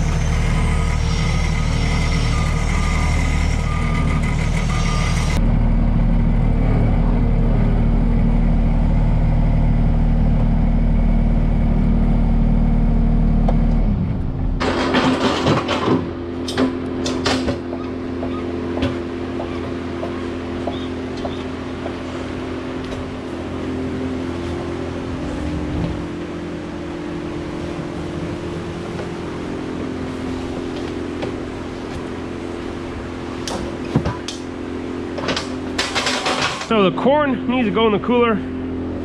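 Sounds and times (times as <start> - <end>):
pallet jack clanking on concrete: 14.6 - 17.6, 35.2 - 36.8
machine humming: 16.3 - 39.0.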